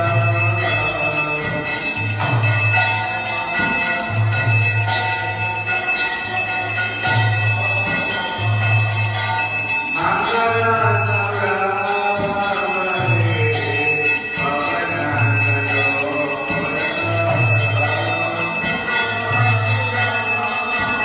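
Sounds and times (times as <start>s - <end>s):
devotional music: 0.0s - 21.0s
hand bell ringing: 0.0s - 21.0s.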